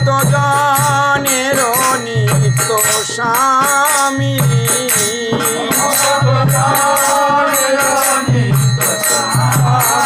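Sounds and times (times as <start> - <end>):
small percussion rhythm: 0.0 - 10.0.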